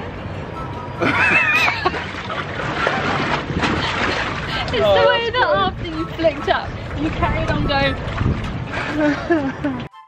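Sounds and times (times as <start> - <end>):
woman laughing: 1.0 - 2.0, 8.8 - 9.9
wind on microphone: 2.5 - 9.8.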